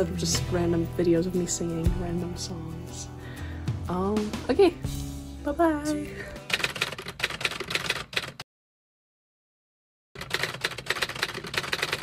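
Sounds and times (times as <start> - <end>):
typewriter key clacks: 6.5 - 8.4, 10.2 - 12.0.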